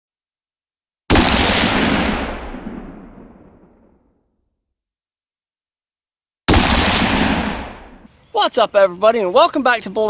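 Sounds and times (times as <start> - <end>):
loud gunshot-like blast: 1.1 - 3.5, 6.5 - 8.1.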